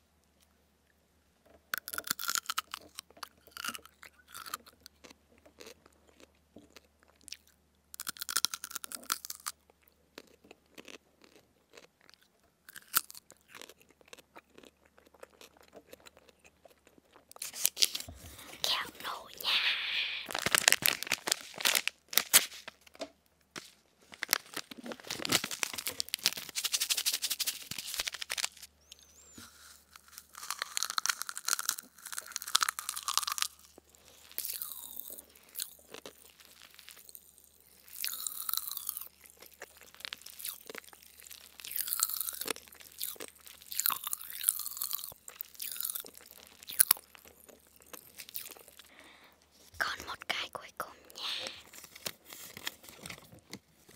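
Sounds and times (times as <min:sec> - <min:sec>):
popping candy crackling and chewing: 0:01.4 - 0:53.9
paper packet crinkling: 0:17.4 - 0:28.7, 0:29.4 - 0:35.2, 0:49.9 - 0:53.9.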